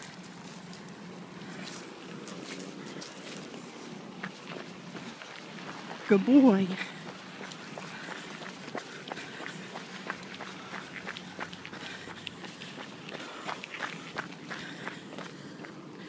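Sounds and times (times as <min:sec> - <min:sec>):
footsteps on asphalt: 0:00.0 - 0:16.0.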